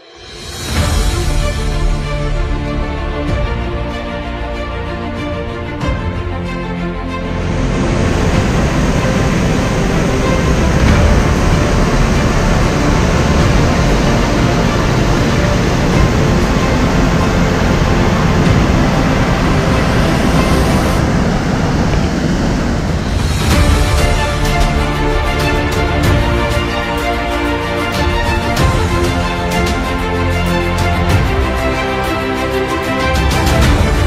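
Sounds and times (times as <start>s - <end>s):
music: 0.0s - 34.0s
waterfall and river rapids rushing: 7.0s - 34.0s.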